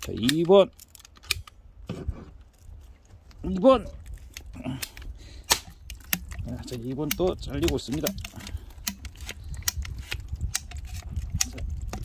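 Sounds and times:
pipe cutter clicking and cracking plastic: 0:00.0 - 0:01.6, 0:04.0 - 0:12.0.

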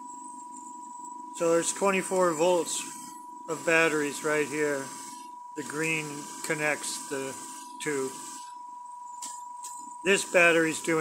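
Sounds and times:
faint high-pitched tone: 0:00.0 - 0:08.6, 0:09.2 - 0:11.0.

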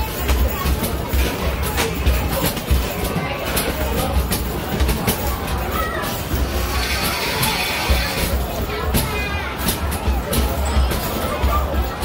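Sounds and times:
arcade hubbub: 0:00.0 - 0:12.0.

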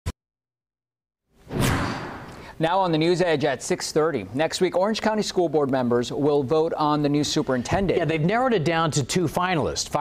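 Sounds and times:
whoosh sound effect: 0:01.5 - 0:02.5.

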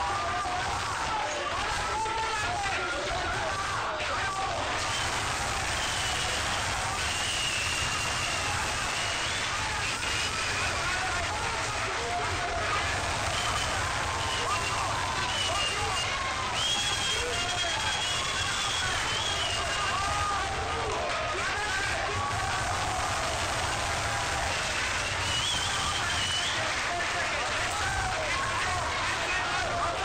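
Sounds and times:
arena crowd shouting: 0:00.0 - 0:30.0.

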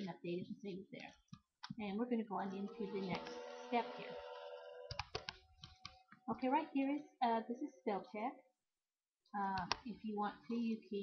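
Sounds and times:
computer mouse clicking: 0:04.9 - 0:06.1, 0:09.6 - 0:10.0.

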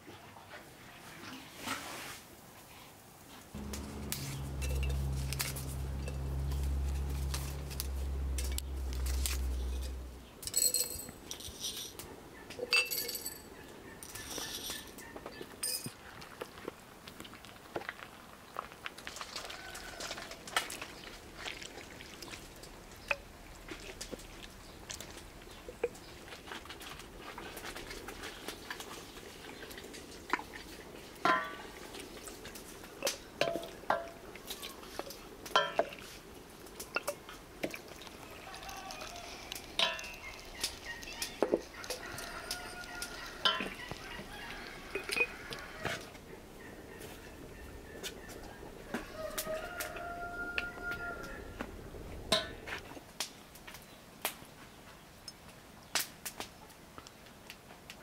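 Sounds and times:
glass jars clinking: 0:10.4 - 0:11.2, 0:12.7 - 0:13.5, 0:39.8 - 0:40.5, 0:43.4 - 0:43.8
chickens clucking: 0:38.2 - 0:49.0.

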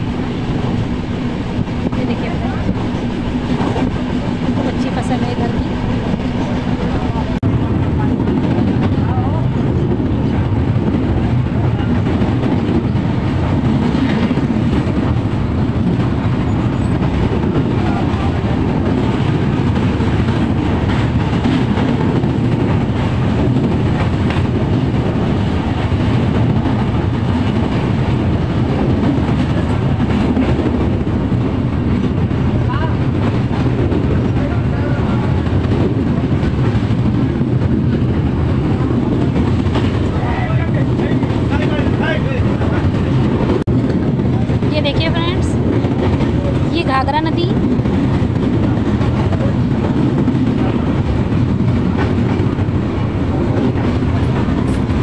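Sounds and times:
train wheels rumbling on rails: 0:00.0 - 0:55.0.

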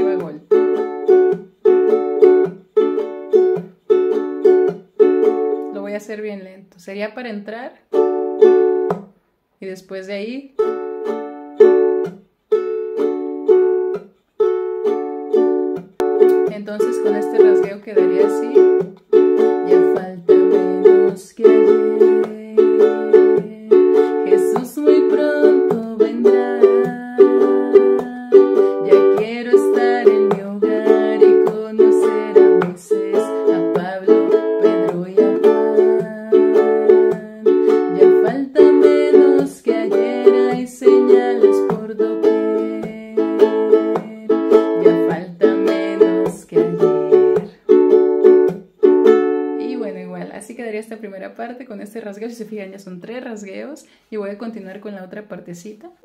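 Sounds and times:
ukulele strumming chords: 0:00.0 - 0:06.0, 0:07.9 - 0:09.1, 0:10.6 - 0:50.0.

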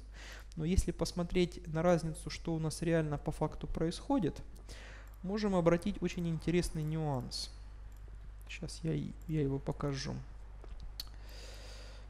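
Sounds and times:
steady low hum: 0:00.0 - 0:12.0
breath into microphone: 0:00.1 - 0:00.5, 0:04.6 - 0:05.2, 0:11.2 - 0:12.0.

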